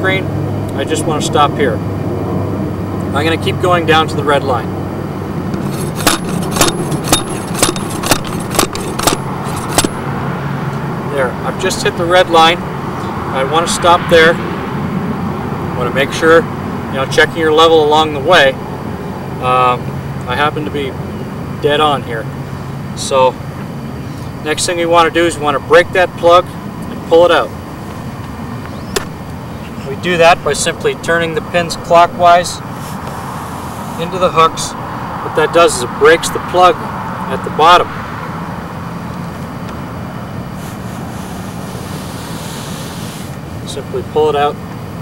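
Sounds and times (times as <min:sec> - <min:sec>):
low outdoor rumble: 0:00.0 - 0:45.0
sharp click: 0:28.9 - 0:29.2.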